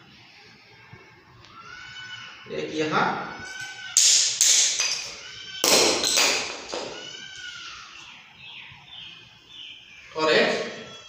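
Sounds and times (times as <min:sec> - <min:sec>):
hard knocks on stone slab: 0:04.0 - 0:07.0.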